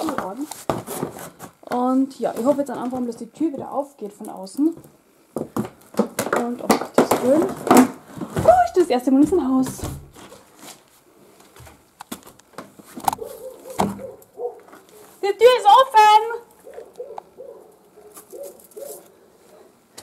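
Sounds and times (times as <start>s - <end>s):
knocks and scuffs of climbing: 0.0s - 3.7s, 4.7s - 15.2s.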